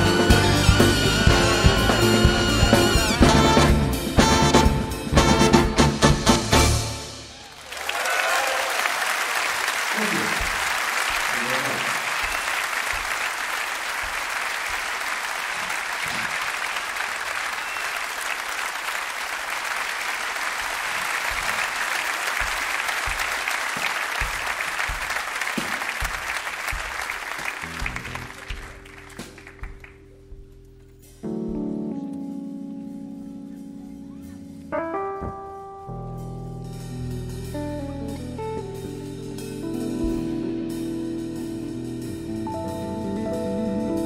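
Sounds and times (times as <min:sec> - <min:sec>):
keyboard playing: 0:00.0 - 0:07.3, 0:27.4 - 0:44.0
audience applauding: 0:07.2 - 0:30.0.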